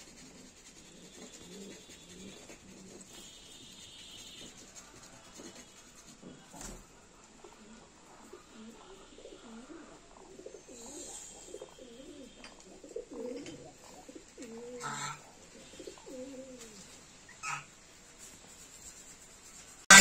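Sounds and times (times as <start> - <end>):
soft cooing bird calls: 6.2 - 17.6.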